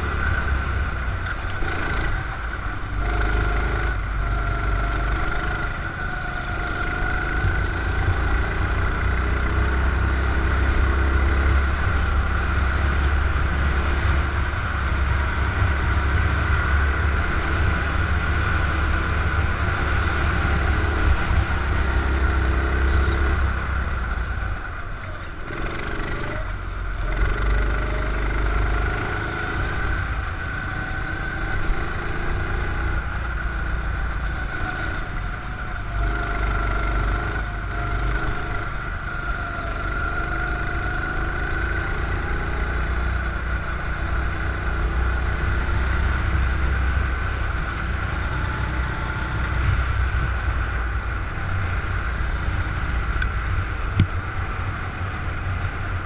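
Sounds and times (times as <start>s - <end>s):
go-kart engine revving: 0.0s - 56.0s.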